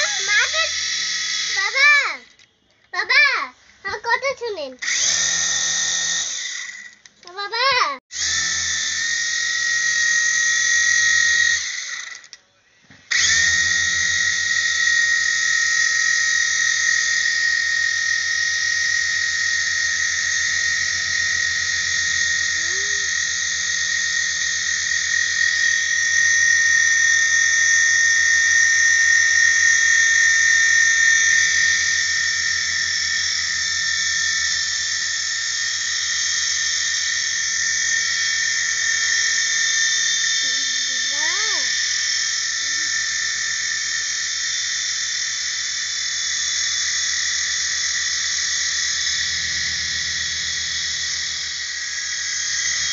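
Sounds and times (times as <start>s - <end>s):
toy helicopter motor whine: 0.0s - 52.9s.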